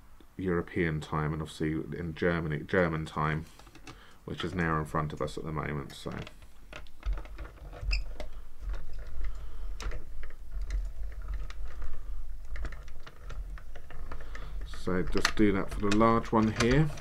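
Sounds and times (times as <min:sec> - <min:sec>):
die-cutting machine clicking and rattling: 0:12.5 - 0:17.0.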